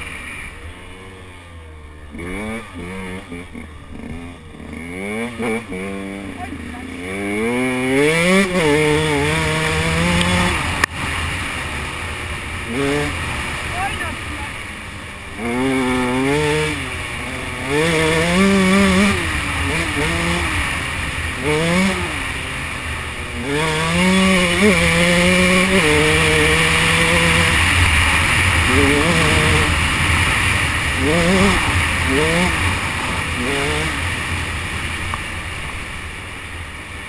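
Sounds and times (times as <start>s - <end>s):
constant rushing noise: 0.0s - 37.0s
motorcycle engine revving: 0.0s - 37.0s.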